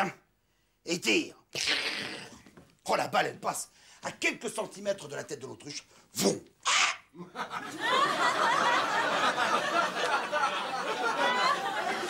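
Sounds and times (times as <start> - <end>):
audience laughter: 7.2 - 12.0.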